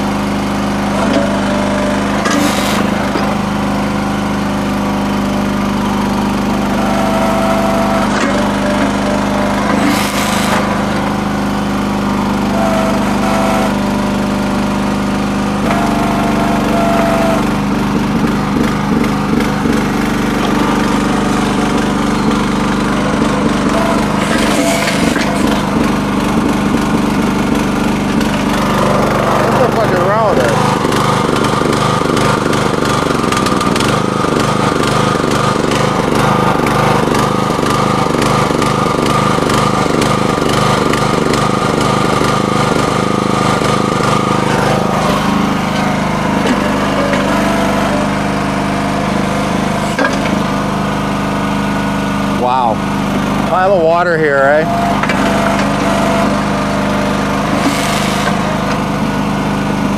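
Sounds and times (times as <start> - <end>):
small gasoline engine running: 0.0 - 59.9.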